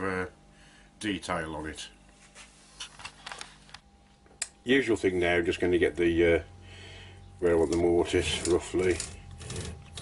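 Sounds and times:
light scrapes of hand tools: 7.6 - 10.0.

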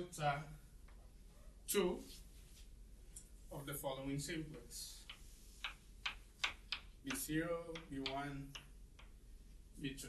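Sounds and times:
chalk tapping on chalkboard: 4.9 - 9.2.

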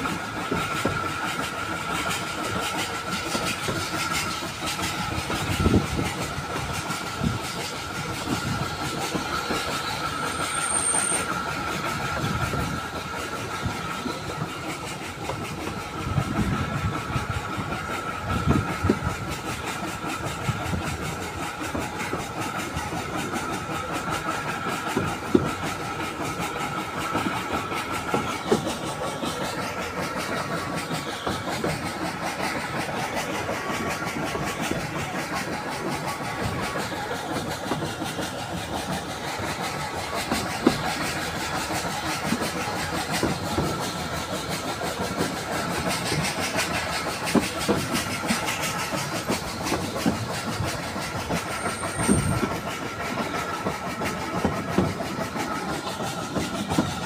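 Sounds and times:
low knocks of train wheels: 0.0 - 57.0
train running noise: 0.0 - 57.0.

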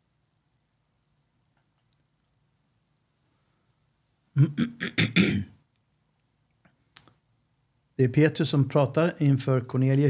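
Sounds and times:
man clearing his throat: 4.4 - 5.6
faint mouth click: 6.5 - 7.2.

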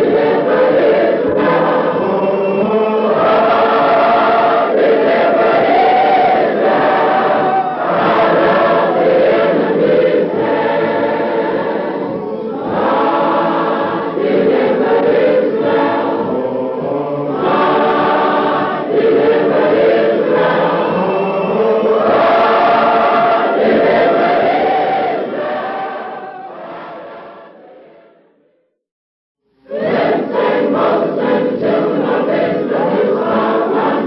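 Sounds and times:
choir singing: 0.0 - 28.5, 29.6 - 34.0.

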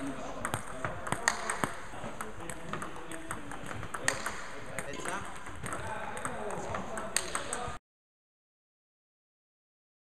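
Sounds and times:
table tennis balls clicking: 0.3 - 7.8.

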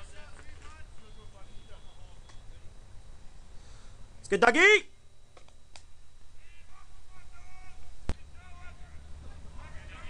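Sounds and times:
distant players calling out: 0.0 - 2.9, 6.2 - 10.0.

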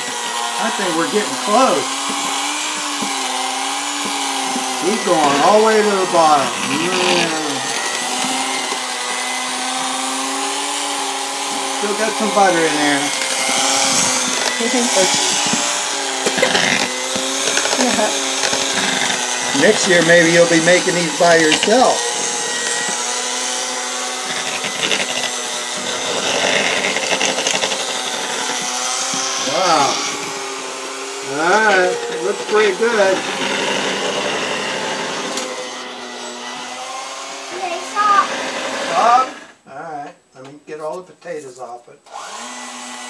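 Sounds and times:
electric hand mixer whipping: 0.0 - 39.6, 42.1 - 43.0.

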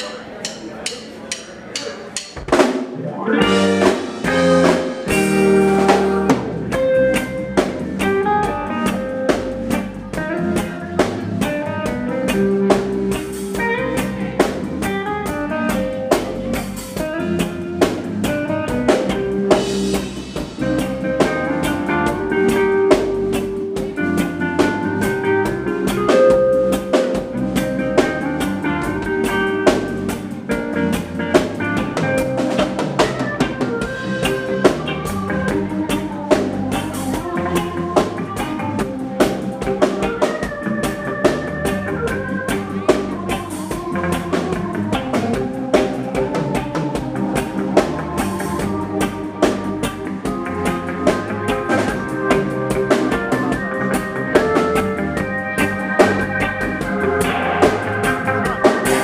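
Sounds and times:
live reggae band playing: 0.0 - 59.0.

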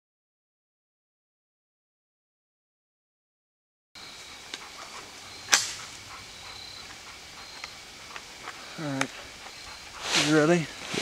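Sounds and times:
loud sharp snap: 5.5 - 5.9
light ticks: 7.6 - 9.2.

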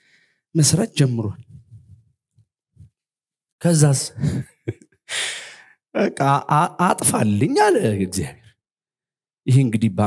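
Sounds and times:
man speaking: 0.6 - 1.5, 6.0 - 8.5, 9.5 - 10.0
man sighing: 5.1 - 5.7.

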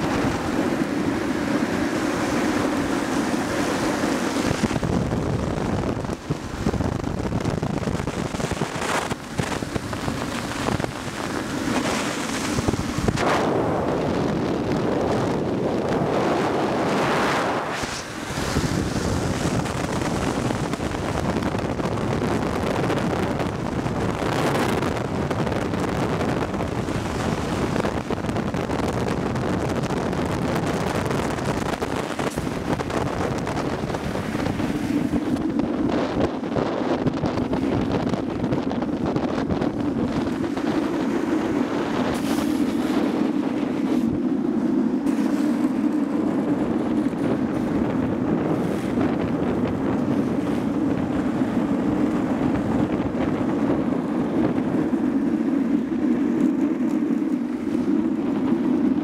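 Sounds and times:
road noise on asphalt: 0.0 - 59.0
wind rushing over microphone: 0.0 - 59.0.

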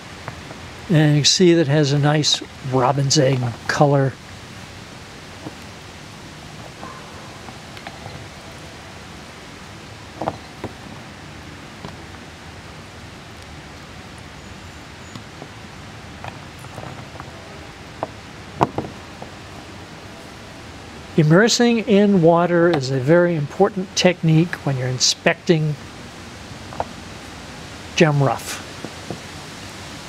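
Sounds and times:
steady background hiss: 0.0 - 30.0
stones knocking on wooden board: 18.0 - 19.3.

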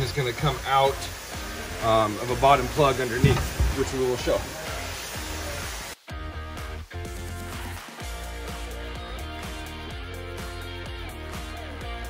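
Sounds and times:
steady low bass: 1.0 - 12.0.

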